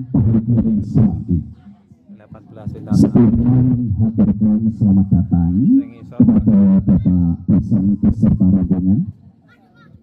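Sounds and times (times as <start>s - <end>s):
man talking over loudspeaker: 0.0s - 9.3s.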